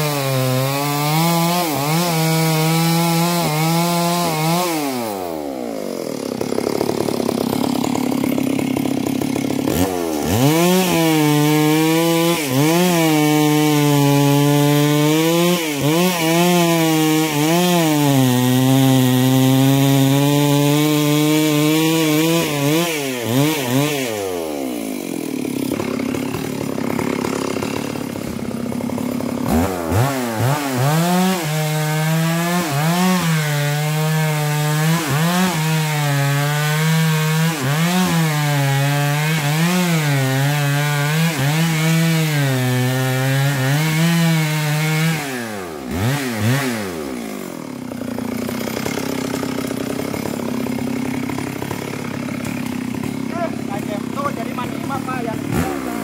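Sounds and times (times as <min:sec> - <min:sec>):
chainsaw cutting a log: 0:00.0 - 0:56.0
chainsaw idling: 0:00.0 - 0:56.0.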